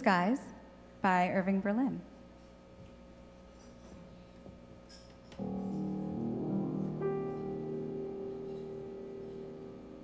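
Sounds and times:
piano sustained chords: 0:05.4 - 0:10.0.

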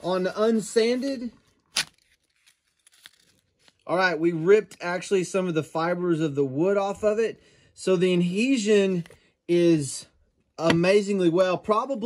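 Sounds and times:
tape crinkling: 0:00.5 - 0:03.9.

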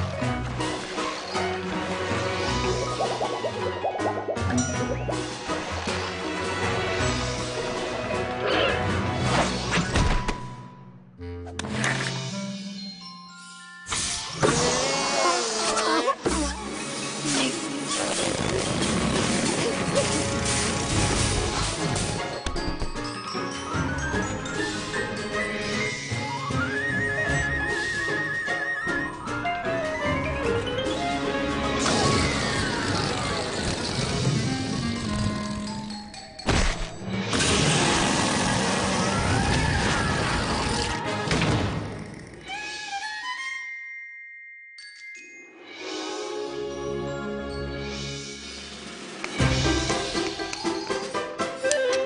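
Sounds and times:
cartoon background music: 0:00.0 - 0:43.9, 0:45.5 - 0:52.0.

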